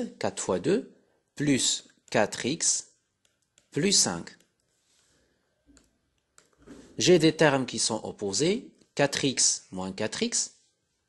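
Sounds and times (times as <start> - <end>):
person speaking: 0.0 - 4.8, 5.8 - 10.6
soft breath: 4.8 - 5.6.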